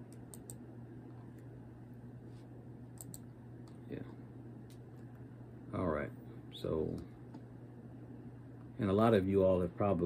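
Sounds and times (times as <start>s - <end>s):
steady low hum: 0.0s - 10.0s
computer clicks: 0.1s - 0.6s, 3.0s - 3.8s.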